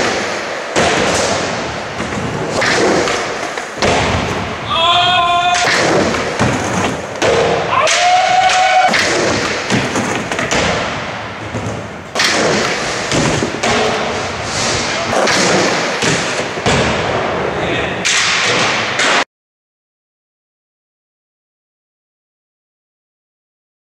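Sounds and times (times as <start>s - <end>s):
skateboard clacks and thuds: 0.0s - 4.6s, 5.5s - 17.3s
skateboard rolling on concrete: 0.0s - 4.6s, 5.6s - 7.7s, 8.3s - 17.5s
person calling out: 4.7s - 5.7s.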